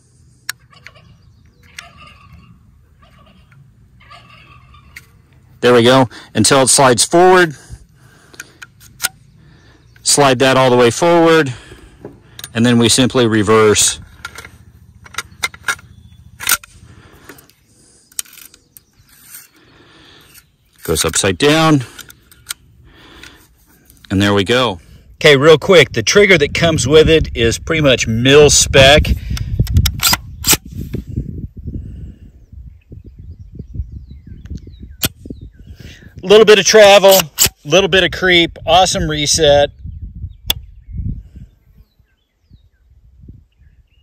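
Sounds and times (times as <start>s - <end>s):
handling and wind rumble: 0.0s - 44.0s
metal clicks: 12.0s - 12.6s, 14.0s - 19.6s
metal sliding and scraping: 18.1s - 19.6s.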